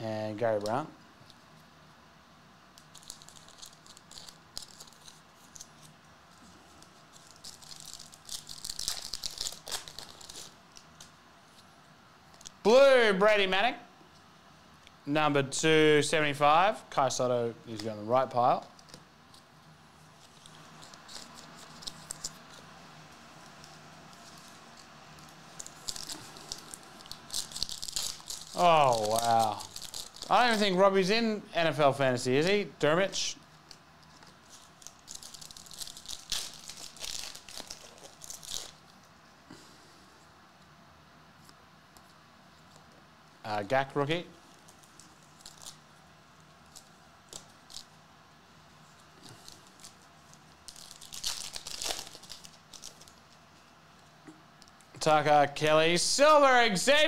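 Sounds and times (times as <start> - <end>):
foil wrapper crinkling and tearing: 2.8 - 11.1, 20.1 - 22.7, 23.4 - 30.8, 33.4 - 39.1, 44.5 - 48.0, 48.9 - 53.5.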